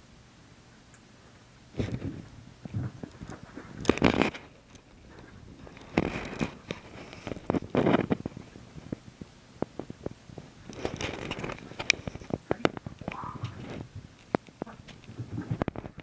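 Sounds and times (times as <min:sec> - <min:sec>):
claws clicking on door and floor: 0:01.8 - 0:16.0.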